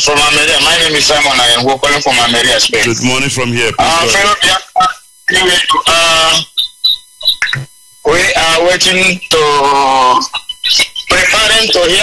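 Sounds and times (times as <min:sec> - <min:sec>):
man speaking over phone: 0:00.4 - 0:04.7, 0:08.1 - 0:10.3
short high-pitched beeps: 0:02.8 - 0:04.3.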